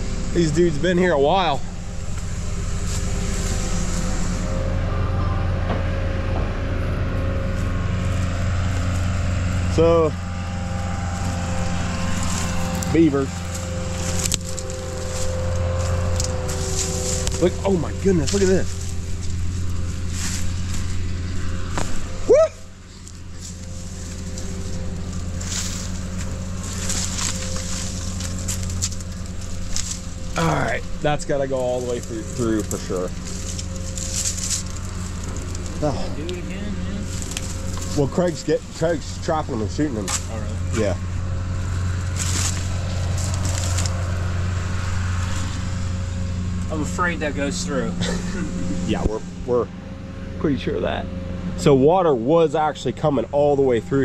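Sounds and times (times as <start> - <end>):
diesel machine idling: 0.0 - 54.0
sticks crackling underfoot: 11.0 - 22.4, 23.0 - 38.9, 41.5 - 45.8.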